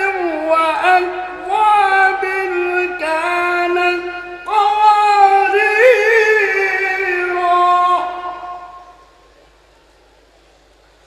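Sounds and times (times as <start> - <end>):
man reciting melodically: 0.0 - 9.0
faint room noise: 0.0 - 11.0.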